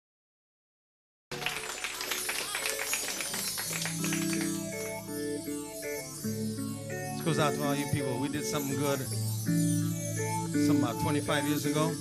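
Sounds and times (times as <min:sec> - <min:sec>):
studio audience applause: 0:01.3 - 0:05.7
live band holding chords: 0:01.4 - 0:12.0.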